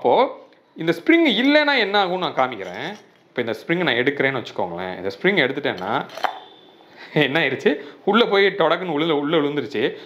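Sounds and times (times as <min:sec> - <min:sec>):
man speaking: 0:00.0 - 0:06.2, 0:07.1 - 0:10.0.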